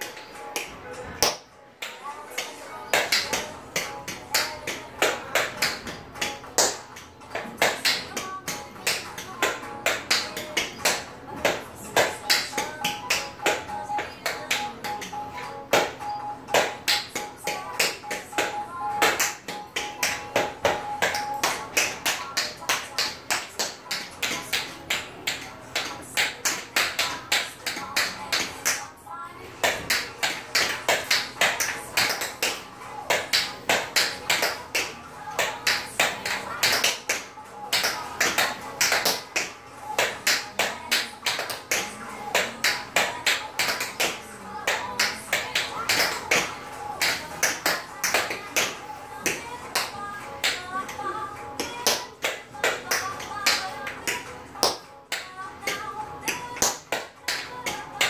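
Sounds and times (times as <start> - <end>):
pop music: 0.0 - 58.0
tap shoes on tile floor: 29.6 - 51.0.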